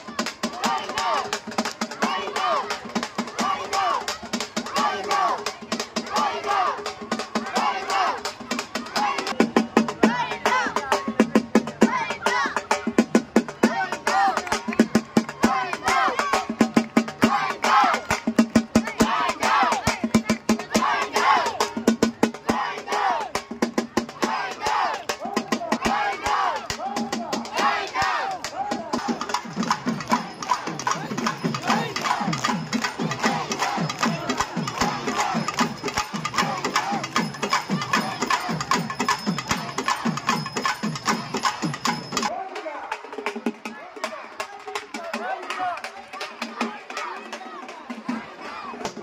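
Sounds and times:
fast drum strokes: 0.0s - 42.3s
crowd: 0.0s - 49.0s
crowd shouting and whooping: 30.1s - 38.8s.

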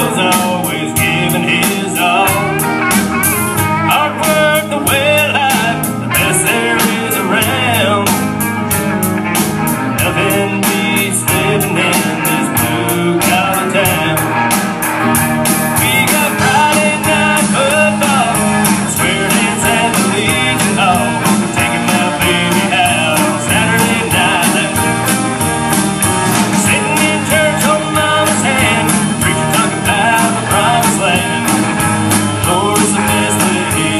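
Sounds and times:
live rock band playing: 0.0s - 33.9s.

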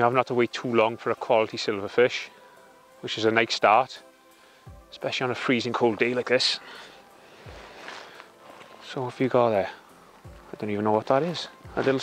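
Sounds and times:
faint outdoor background noise: 0.0s - 12.0s
man speaking: 3.0s - 4.0s, 4.9s - 6.7s, 8.8s - 9.8s, 10.5s - 12.0s.

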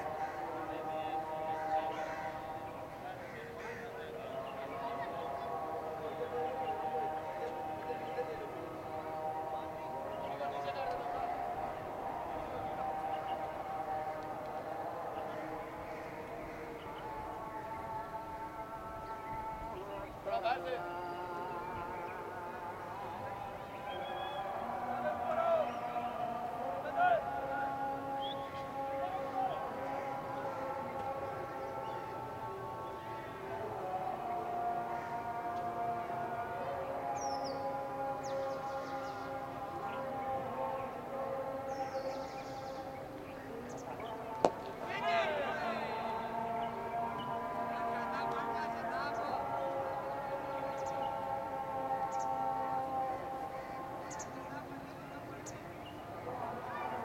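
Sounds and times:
person chanting long notes: 0.0s - 57.0s.

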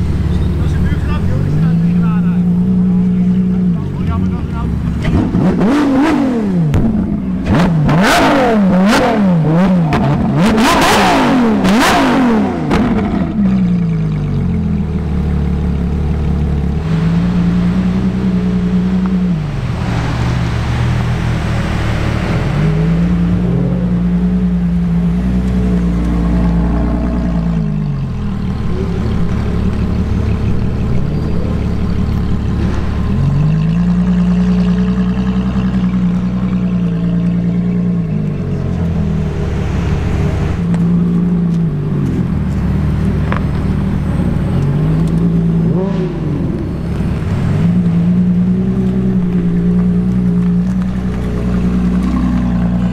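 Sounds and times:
car engine idling: 0.0s - 52.9s
car engine revving: 0.0s - 52.9s.

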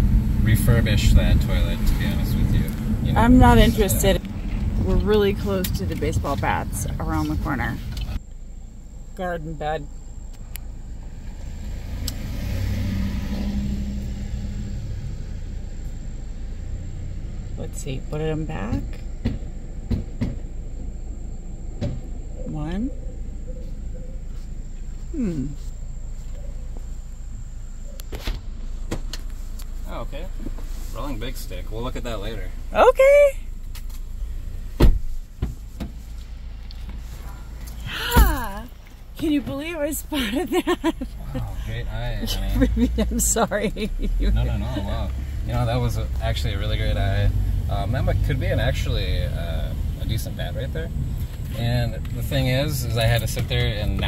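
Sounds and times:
pickup truck driving past: 0.0s - 6.9s, 10.9s - 17.7s, 36.4s - 54.0s
low steady rumble: 0.0s - 12.2s, 13.0s - 54.0s
car door shutting: 34.7s - 36.0s.

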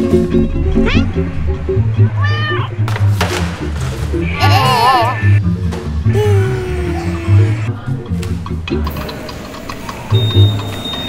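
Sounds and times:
background music with bass line: 0.0s - 10.6s
cat meowing: 0.8s - 1.2s, 2.1s - 2.8s.

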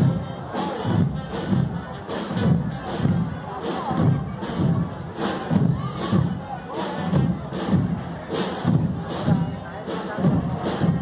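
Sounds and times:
bass drum beats: 0.0s - 11.0s
marching drum band: 0.0s - 11.0s.

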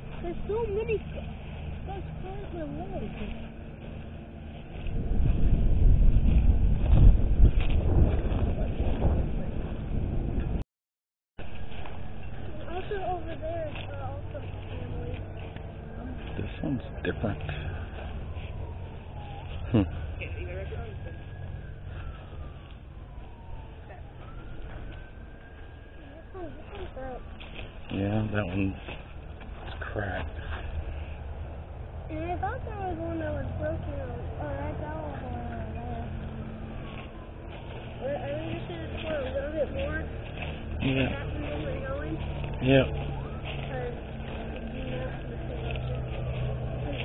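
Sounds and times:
faint siren wailing: 0.0s - 10.6s, 11.5s - 47.0s
low rumble: 0.0s - 10.6s, 11.4s - 47.0s.

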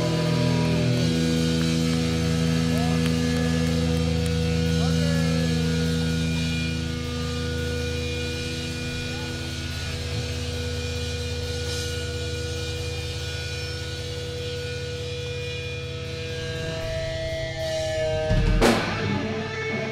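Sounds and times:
guitar amplifier drone: 0.0s - 19.9s
higher tone: 15.8s - 19.9s.

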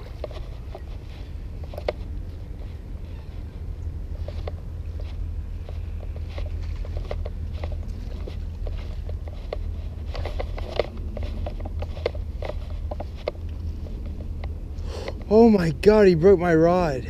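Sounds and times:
light clicks and taps: 0.0s - 2.8s, 4.1s - 15.4s
wind rumble on microphone: 0.0s - 17.0s.

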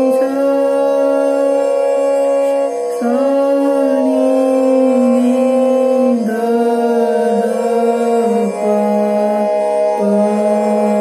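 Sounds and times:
harmonium sustained notes: 0.0s - 11.0s.

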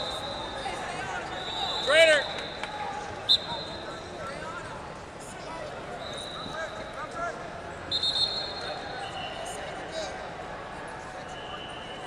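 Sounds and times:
shouted call: 0.0s - 3.9s
sharp whistle chirp: 0.0s - 4.0s, 7.9s - 9.5s
arena crowd background: 0.0s - 12.0s.

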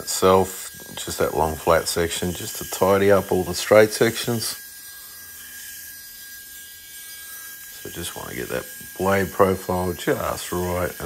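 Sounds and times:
belt grinder running: 0.0s - 11.0s.

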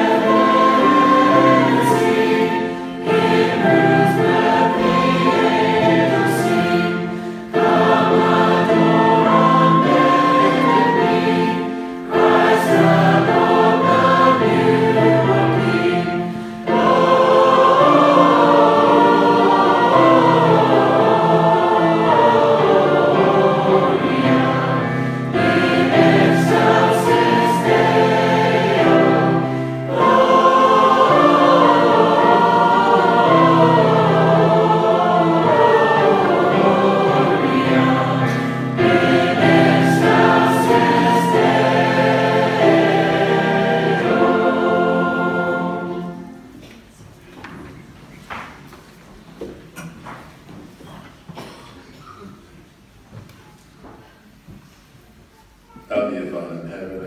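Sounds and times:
flute: 0.0s - 14.3s
congregation singing a hymn: 0.0s - 48.8s.

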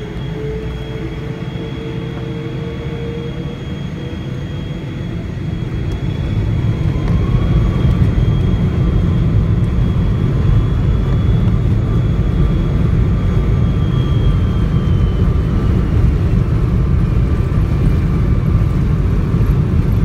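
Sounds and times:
jet engines at takeoff thrust: 0.0s - 20.0s.

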